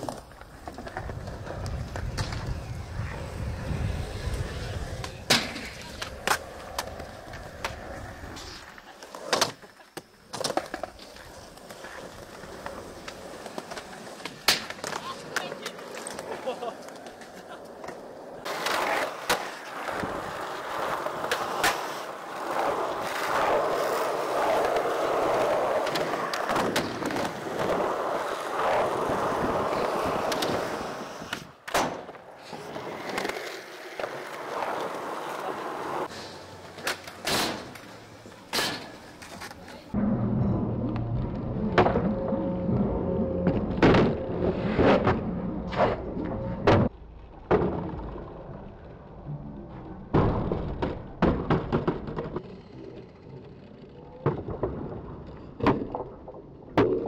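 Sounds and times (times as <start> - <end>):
skateboard wheels rolling on concrete: 0.0 - 57.0
skateboard clacking on ground: 4.1 - 40.0.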